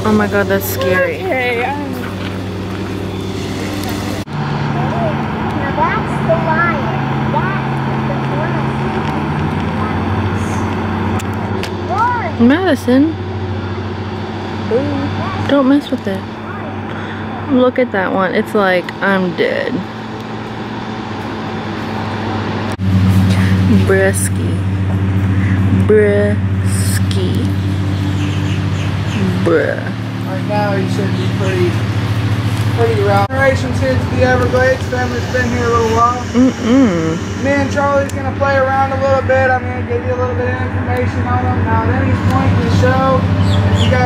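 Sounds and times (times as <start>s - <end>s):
motor humming: 0.0s - 44.0s
man talking: 30.3s - 31.8s, 32.8s - 36.5s, 37.4s - 44.0s.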